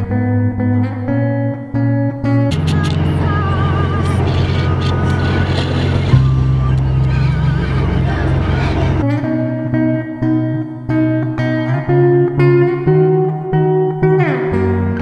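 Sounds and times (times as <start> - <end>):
plucked guitar notes: 0.0 - 15.0
wavering melody line: 2.4 - 10.8
deep held bass note: 2.5 - 9.2.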